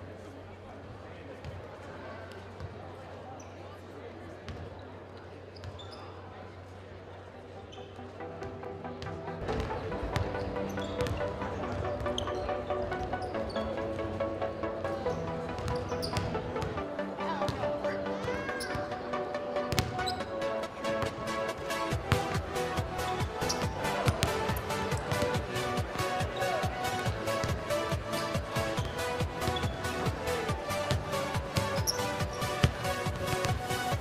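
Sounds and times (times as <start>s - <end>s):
music: 7.7s - 34.0s
basketballs bouncing on hardwood: 19.7s - 19.9s, 23.5s - 25.4s, 32.6s - 33.7s.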